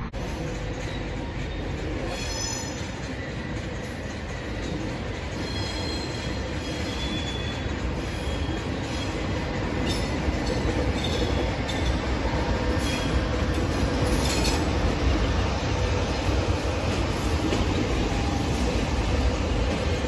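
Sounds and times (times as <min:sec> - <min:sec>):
train running rumble: 0:00.0 - 0:20.0
high wheel squeals: 0:05.3 - 0:09.2.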